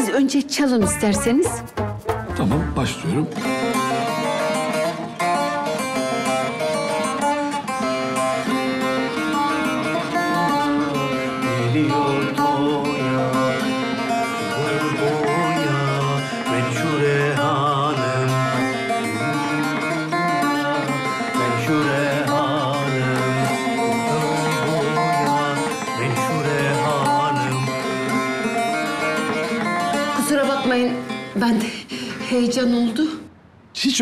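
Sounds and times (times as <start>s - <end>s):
long-necked lute playing folk tune: 0.8s - 32.5s.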